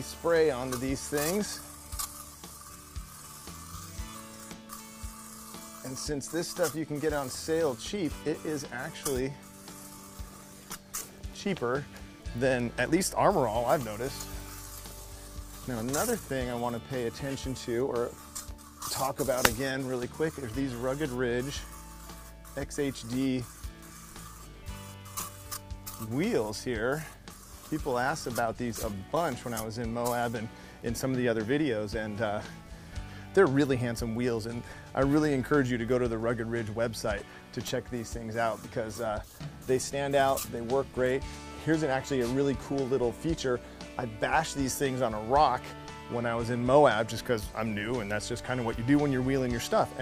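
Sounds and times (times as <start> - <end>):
aerosol can spraying: 0.0 - 50.0
background music: 0.0 - 50.0.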